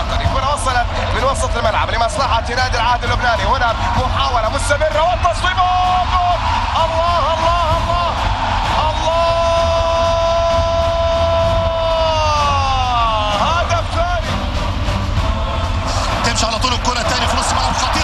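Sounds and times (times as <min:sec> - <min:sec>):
commentator shouting goal: 0:00.0 - 0:14.3, 0:16.1 - 0:18.0
commentator speaking excitedly: 0:00.0 - 0:14.4, 0:16.0 - 0:18.0.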